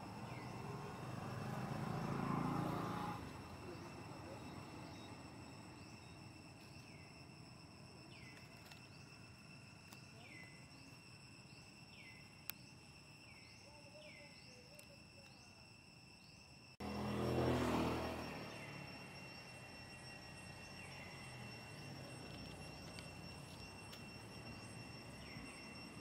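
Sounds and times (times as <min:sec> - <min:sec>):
insects buzzing: 0:00.0 - 0:26.0.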